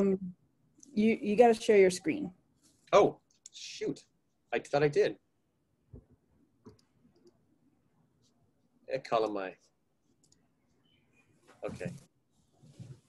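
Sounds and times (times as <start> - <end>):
computer mouse clicks: 6.6 - 7.4, 10.2 - 10.4.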